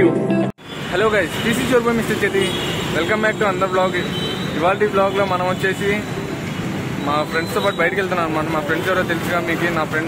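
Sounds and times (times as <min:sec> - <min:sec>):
road traffic: 0:00.0 - 0:10.0
man talking: 0:00.9 - 0:06.1, 0:07.0 - 0:10.0.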